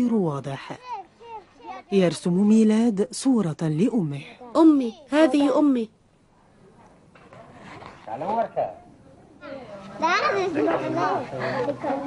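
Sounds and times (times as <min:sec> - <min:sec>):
children talking: 0:00.6 - 0:02.1, 0:04.4 - 0:06.0, 0:09.4 - 0:12.0.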